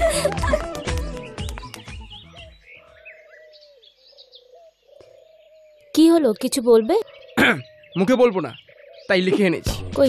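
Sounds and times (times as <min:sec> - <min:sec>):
film music: 0:00.0 - 0:02.5
bird chirps: 0:01.1 - 0:09.8.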